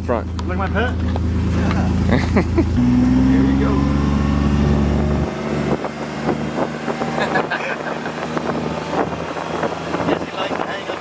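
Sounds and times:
road noise: 0.0s - 11.0s
utility vehicle engine idling: 0.0s - 11.0s
wind on microphone: 4.2s - 11.0s.

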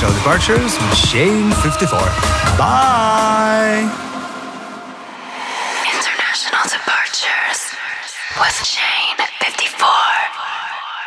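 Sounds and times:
whispered processed voice: 5.6s - 11.0s.

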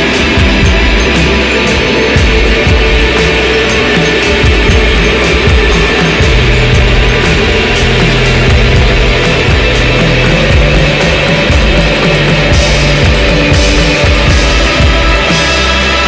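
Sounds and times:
bass: 0.0s - 16.0s
distorted guitar: 0.0s - 16.0s
keyboards: 0.0s - 16.0s
steady drum beat: 0.0s - 16.0s.

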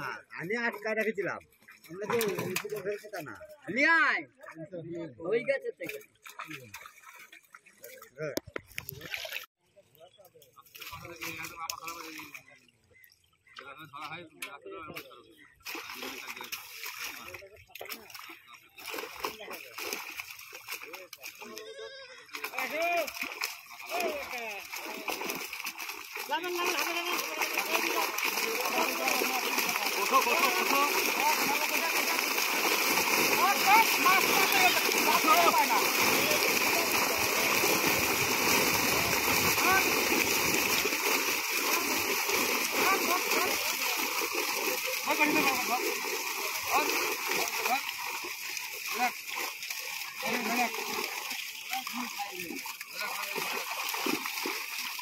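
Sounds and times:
fish splashing in water: 5.9s - 9.5s, 15.5s - 55.0s
men's voices: 20.8s - 53.9s.

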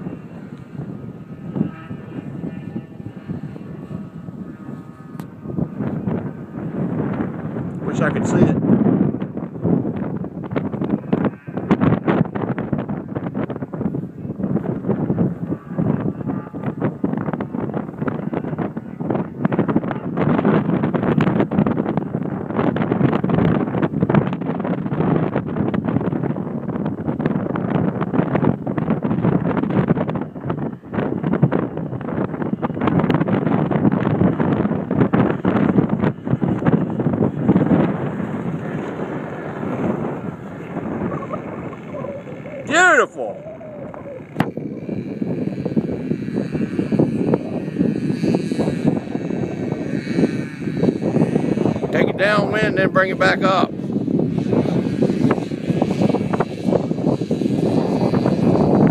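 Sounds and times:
gusty wind buffeting microphone: 0.0s - 58.9s.

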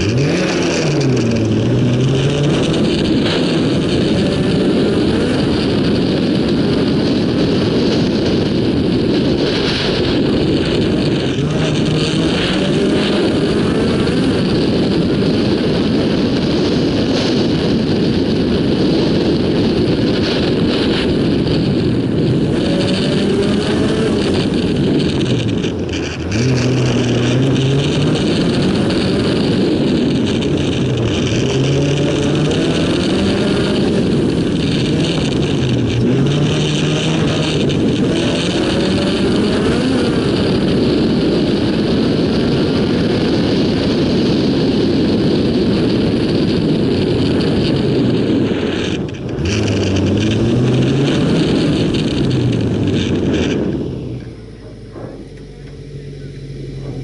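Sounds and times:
car engine revving: 0.0s - 57.0s.

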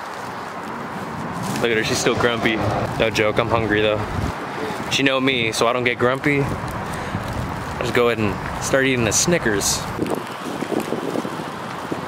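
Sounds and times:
wind on microphone: 1.2s - 5.7s, 6.4s - 12.0s.

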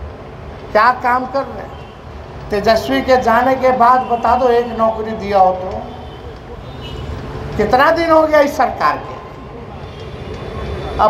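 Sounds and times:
man speaking over amplifier: 0.7s - 1.8s, 2.5s - 6.0s, 7.6s - 9.3s.

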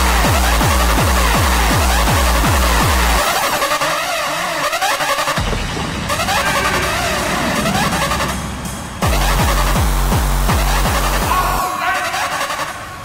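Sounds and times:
distorted kick drum: 0.0s - 3.2s, 5.4s - 11.6s
low drone: 5.3s - 11.6s.

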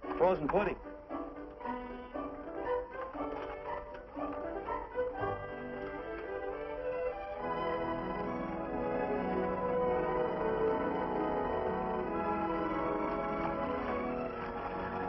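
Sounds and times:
orchestral strings music: 0.0s - 15.0s.

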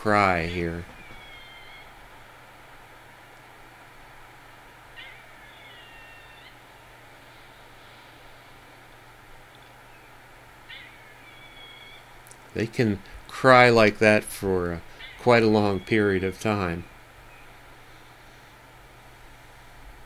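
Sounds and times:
background hiss: 0.0s - 20.0s
squirrel mournful cry: 0.4s - 2.1s, 4.8s - 6.9s, 9.9s - 12.2s, 14.9s - 16.8s.

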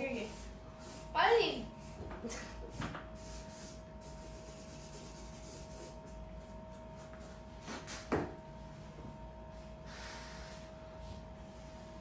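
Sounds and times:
pen drawing on paper: 3.2s - 6.0s.

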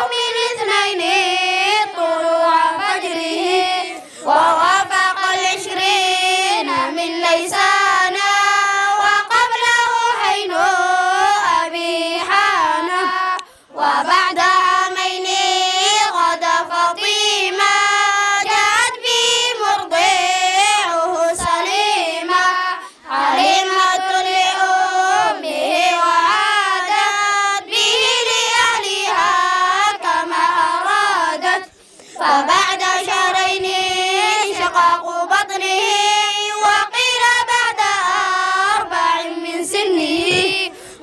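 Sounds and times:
children chanting in unison: 0.0s - 41.0s.

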